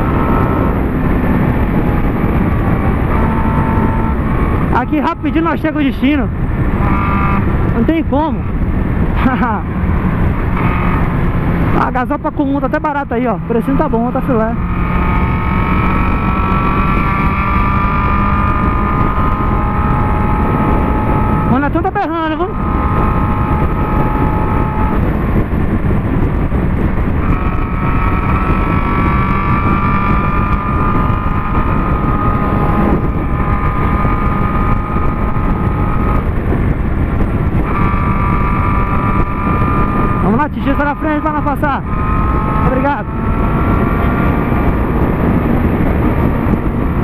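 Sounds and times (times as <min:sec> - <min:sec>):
motorcycle engine cruising: 0:00.0 - 0:47.0
wind noise: 0:00.0 - 0:47.0.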